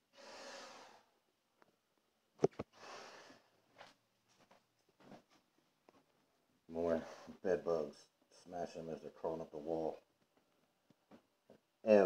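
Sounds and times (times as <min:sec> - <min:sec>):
breathing through a respirator: 0:00.1 - 0:01.1, 0:02.7 - 0:03.5.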